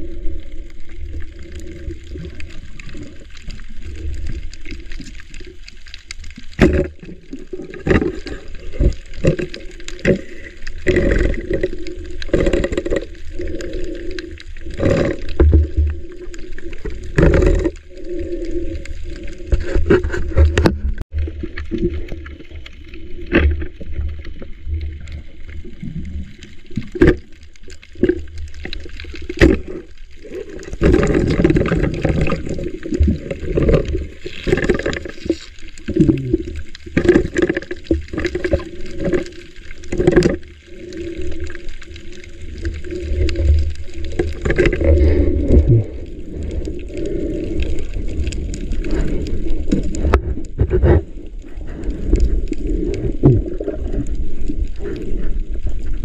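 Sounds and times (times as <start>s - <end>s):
water sloshing and gurgling underwater: 0.0s - 56.0s.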